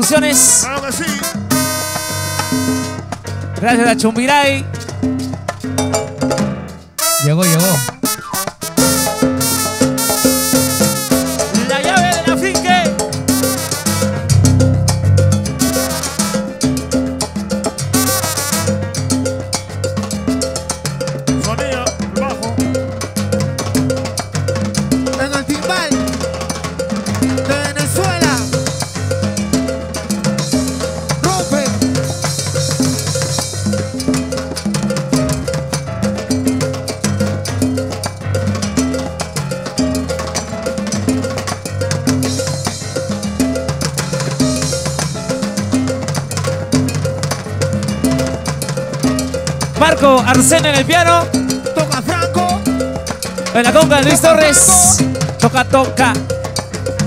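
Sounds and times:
congas: 0.0s - 57.0s
piano: 0.0s - 57.0s
salsa band playing: 0.0s - 57.0s
horn section: 0.2s - 3.1s, 7.0s - 12.6s, 13.3s - 16.7s, 18.0s - 18.8s.

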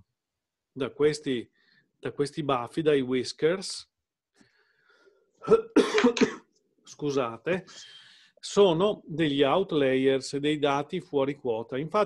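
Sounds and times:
man coughing: 5.4s - 6.5s.

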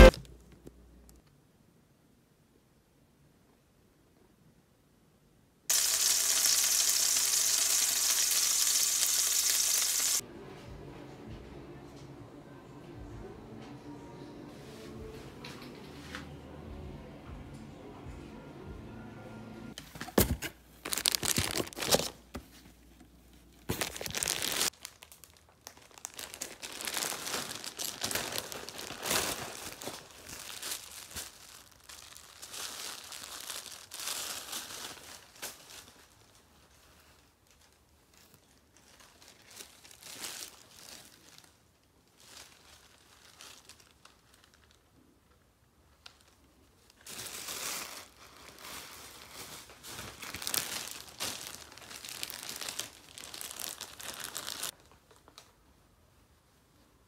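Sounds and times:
pancakes sizzling in oil: 5.7s - 10.2s
plastic bag crinkling: 5.7s - 10.2s, 20.8s - 22.3s, 23.6s - 55.5s.

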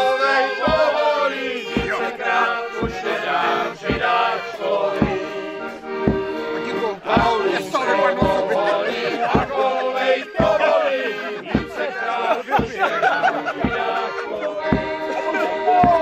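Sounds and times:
group singing folk song: 0.0s - 16.0s
low thump keeping the beat: 0.0s - 16.0s
piano-accordion: 0.0s - 16.0s.

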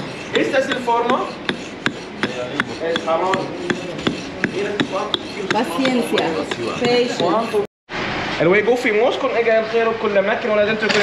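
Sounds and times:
hammer chipping stone: 0.0s - 7.3s.

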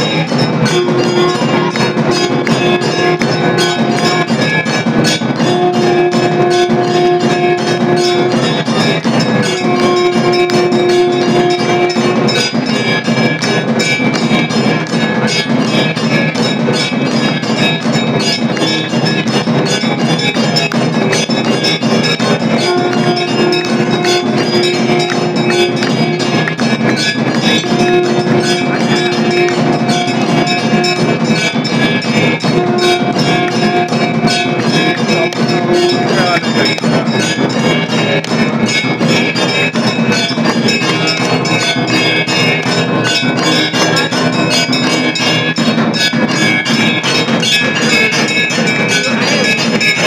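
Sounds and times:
long held notes: 0.0s - 45.6s
bells ringing: 0.0s - 50.0s
percussion striking: 0.0s - 50.0s.

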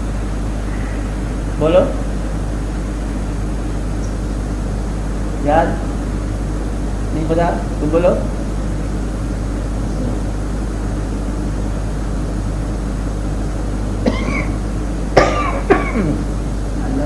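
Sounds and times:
low hum and hiss: 0.0s - 17.0s
person coughing: 14.0s - 14.6s, 15.2s - 16.3s.

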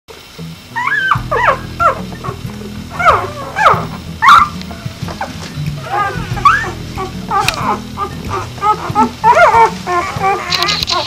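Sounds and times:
low background music: 0.2s - 11.0s
puppies whimpering and squealing: 0.7s - 11.0s.

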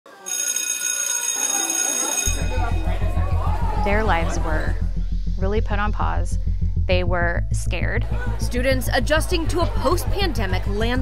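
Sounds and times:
high bell-like ringing tone: 0.3s - 3.3s
intro music: 2.2s - 11.0s.

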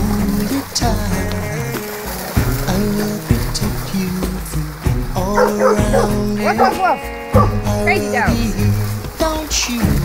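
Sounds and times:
background music: 0.0s - 10.0s
dog yipping and barking: 5.4s - 8.2s.

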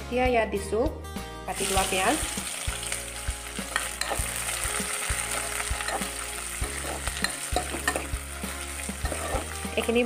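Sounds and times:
onions sizzling in oil: 1.5s - 10.0s
metal spatula scraping a pan: 5.3s - 8.2s, 8.9s - 10.0s.

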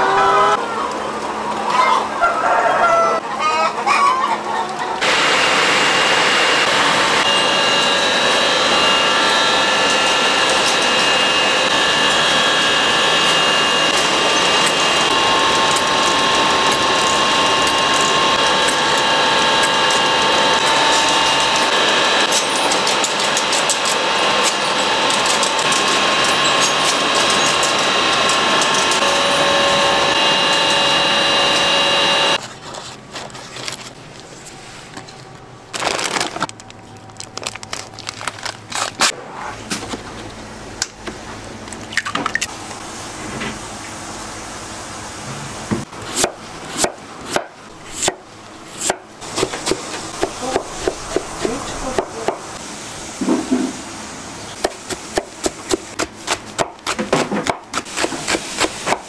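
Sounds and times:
hen clucking: 1.7s - 5.0s
machine whine: 5.0s - 32.4s.

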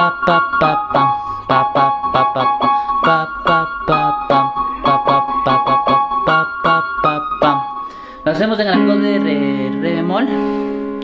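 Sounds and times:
keyboard piano melody: 0.0s - 11.0s.

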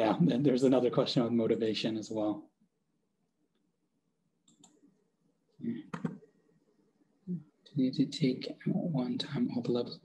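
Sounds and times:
faint clicks: 4.4s - 4.9s.

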